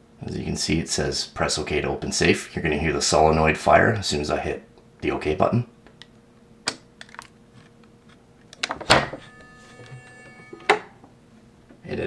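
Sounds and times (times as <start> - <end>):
solenoid electrical buzz: 7.6 - 11.2.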